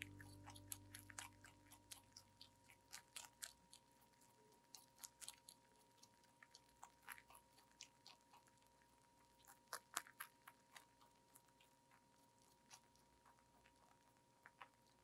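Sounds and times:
held musical tone: 0.0s - 1.9s
rabbit chewing greens: 0.0s - 15.0s.

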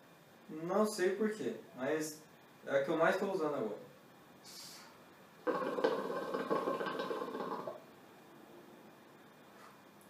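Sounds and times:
short hiss: 4.4s - 5.0s
hookah water bubbling: 5.4s - 7.9s.

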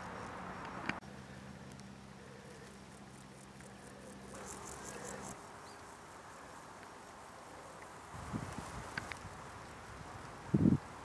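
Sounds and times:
insect stridulating: 0.0s - 11.0s.

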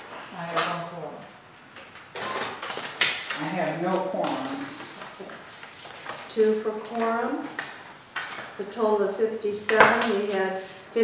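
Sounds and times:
paper rustling: 2.4s - 8.7s.

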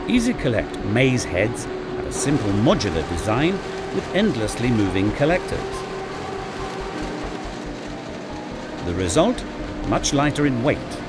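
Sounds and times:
harvester machine drone and rumble: 0.0s - 11.0s.

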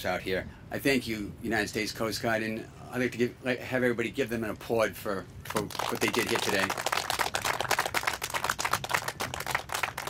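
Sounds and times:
crowd applauding: 5.6s - 10.0s.

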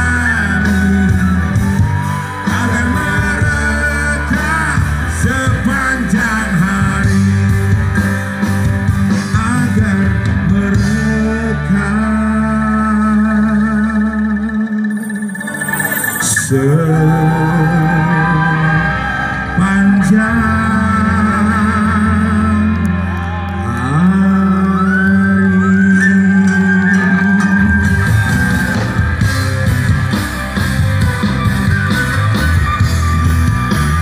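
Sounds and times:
live band music: 0.0s - 13.1s, 26.0s - 34.0s
steady bass: 0.0s - 34.0s
wavering lead line bending notes: 11.7s - 22.0s.

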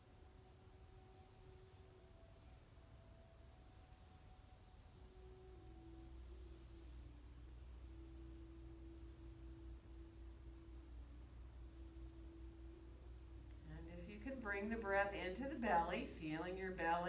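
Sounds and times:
low steady room hum: 0.0s - 17.0s.

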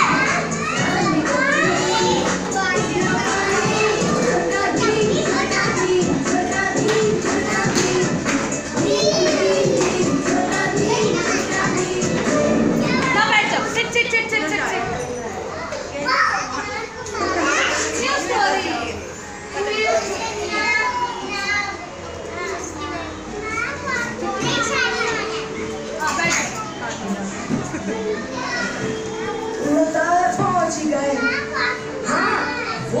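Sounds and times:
young children chattering: 0.0s - 33.0s.

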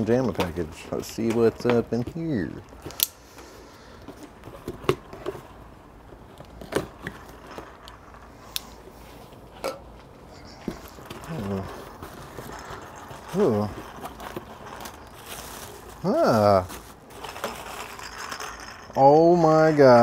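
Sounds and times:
cardboard and wrapping rustling: 0.0s - 20.0s.

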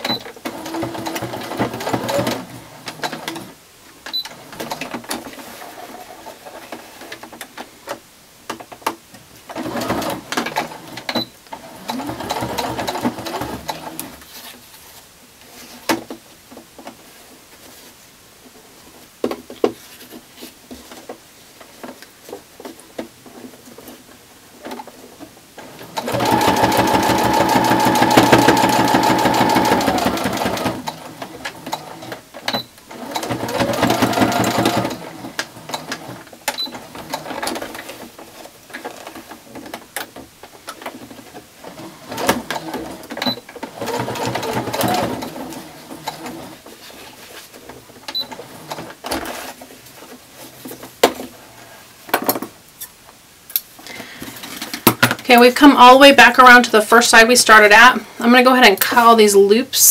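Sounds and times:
sewing machine stitching: 0.0s - 7.2s, 9.5s - 14.2s, 25.6s - 38.1s, 41.1s - 46.6s.

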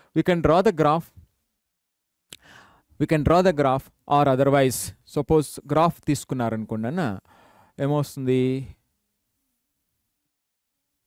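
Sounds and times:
mouth click: 2.3s - 2.5s
man's intake of breath: 2.3s - 3.0s, 7.2s - 7.8s.

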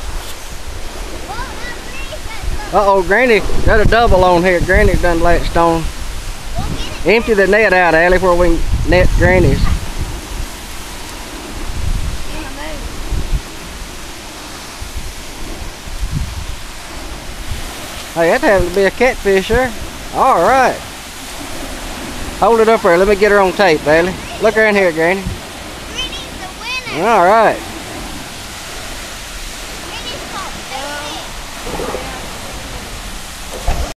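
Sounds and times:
low rumbles: 0.0s - 34.0s
water pouring from a pipe: 0.0s - 34.0s
wind on microphone: 0.0s - 34.0s
faint voices: 29.7s - 33.9s.

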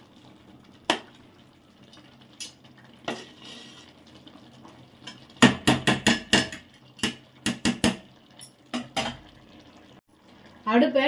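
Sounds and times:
metal ladle knocking on pot: 5.4s - 8.1s.

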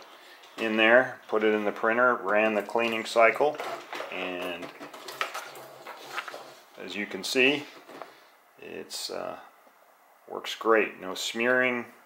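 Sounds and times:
paper rustling: 0.0s - 6.8s.

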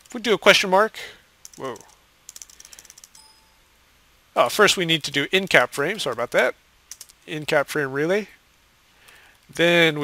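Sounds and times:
keyboard keys clicking: 1.4s - 3.3s, 6.9s - 7.2s.

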